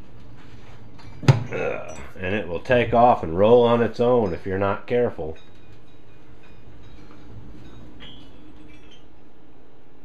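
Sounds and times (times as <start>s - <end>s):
light metallic clinks: 5.2s - 9.2s.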